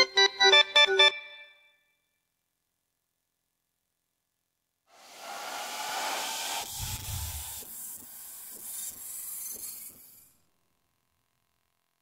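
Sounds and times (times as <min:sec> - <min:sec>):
white-noise hiss sweep: 0:04.9 - 0:08.8.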